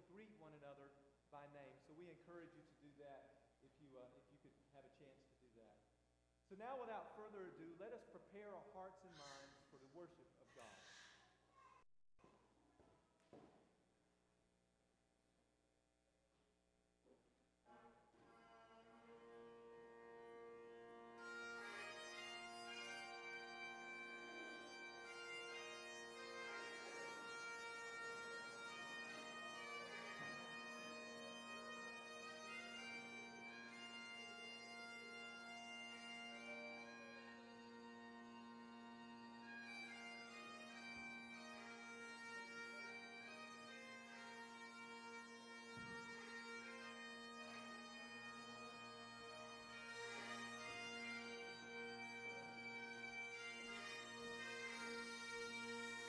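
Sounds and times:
bagpipes playing a tune: 18.2s - 56.0s.

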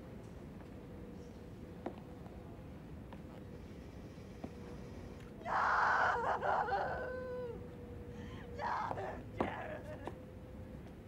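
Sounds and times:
woman screaming and wailing: 5.4s - 7.6s, 8.6s - 10.1s
woman sobbing: 5.5s - 7.6s, 8.2s - 10.2s.

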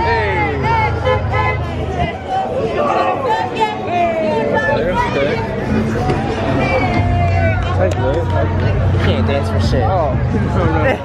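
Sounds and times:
young people shouting and hollering: 0.0s - 11.0s.

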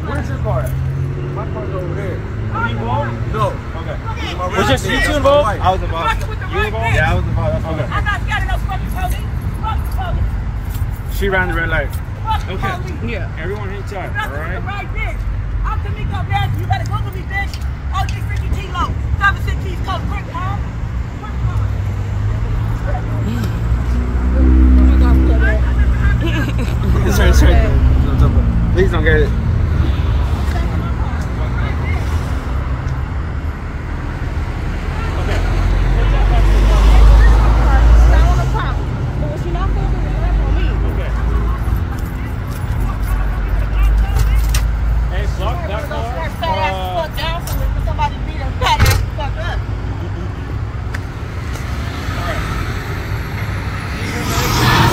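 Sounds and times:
passing vehicle hum: 0.0s - 43.8s, 44.7s - 54.9s
street traffic rumble: 0.0s - 54.9s
indistinct voices: 46.3s - 54.9s.

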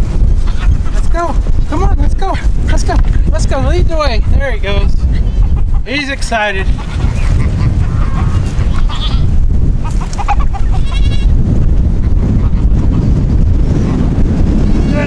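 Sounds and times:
wind buffeting microphone: 0.0s - 15.0s
goats bleating: 0.3s - 1.7s, 6.5s - 11.4s.

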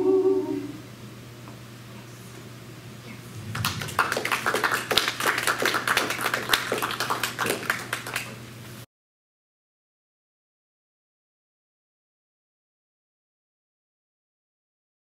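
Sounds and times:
audience applauding: 3.4s - 8.5s.

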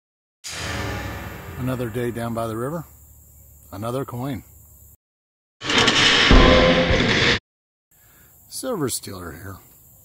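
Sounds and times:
deep hit: 0.4s - 3.0s, 5.7s - 7.4s
rushing swell: 0.5s - 2.7s
low sustained tones: 0.5s - 3.0s.

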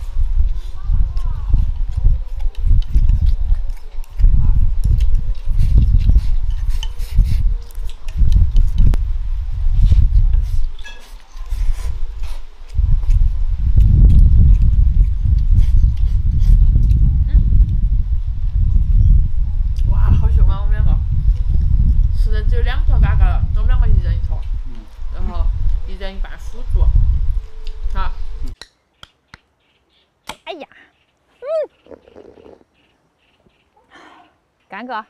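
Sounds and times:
chewing and slurping: 0.0s - 9.0s, 9.9s - 17.8s, 31.7s - 32.9s
low rumble on microphone: 0.0s - 28.6s.

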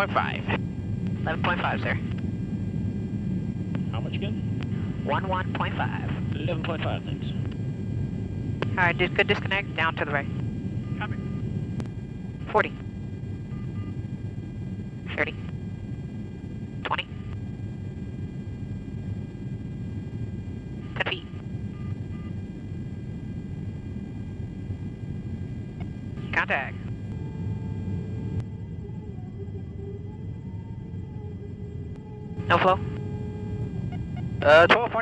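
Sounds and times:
aircraft engine and airflow rumble: 0.0s - 35.0s.

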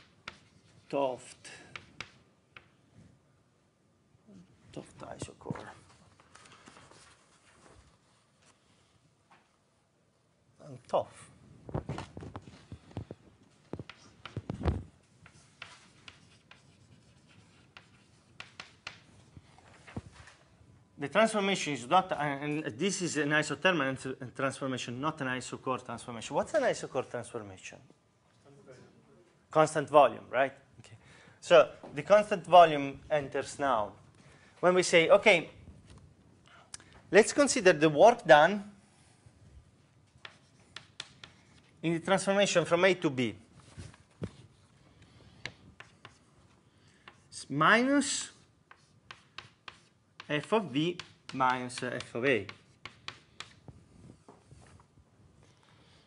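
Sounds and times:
chalk tapping and scratching: 0.0s - 2.7s, 13.7s - 19.5s, 40.1s - 41.8s, 43.6s - 47.4s, 48.1s - 54.9s.

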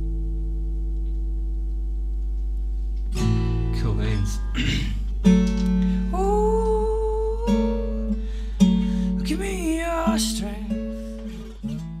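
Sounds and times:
acoustic guitar strummed chords: 0.0s - 1.9s, 3.0s - 12.0s.

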